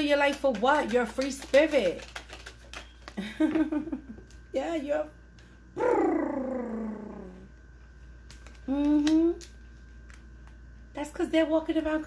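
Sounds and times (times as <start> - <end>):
woman's descending vocal call: 5.8 - 7.4.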